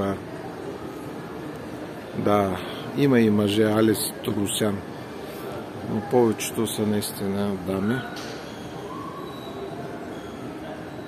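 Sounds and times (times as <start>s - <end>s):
faint distant voices: 0.0s - 11.0s
steady background hum: 0.0s - 11.0s.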